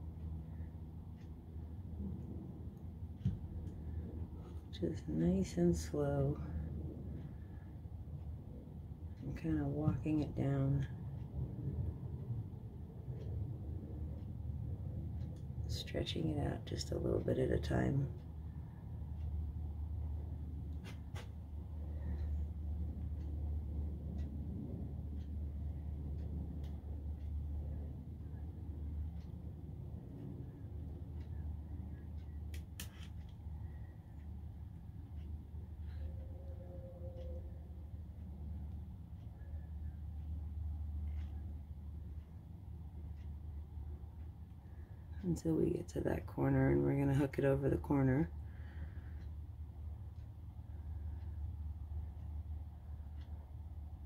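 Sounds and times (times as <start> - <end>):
low room hum: 0.0 - 54.0.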